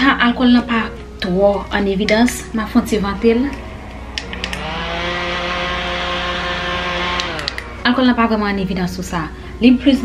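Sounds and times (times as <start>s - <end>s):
handheld fan running: 1.0s - 9.6s.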